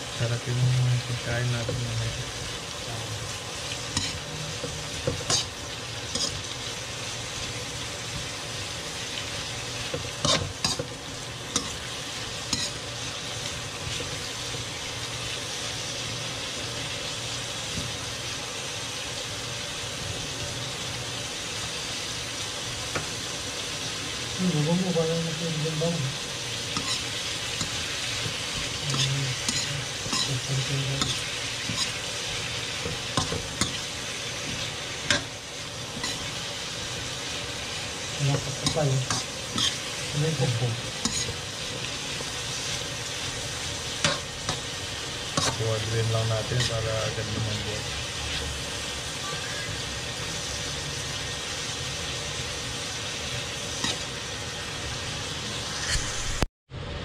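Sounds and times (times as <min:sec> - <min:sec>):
vegetables sizzling in a wok: 0:00.0 - 0:57.0
metal spatula scraping a pan: 0:03.9 - 0:04.3, 0:05.0 - 0:06.5, 0:10.2 - 0:10.8, 0:12.5 - 0:12.9, 0:26.7 - 0:35.3, 0:36.0 - 0:36.4, 0:38.2 - 0:40.0, 0:40.7 - 0:41.4, 0:53.8 - 0:54.1.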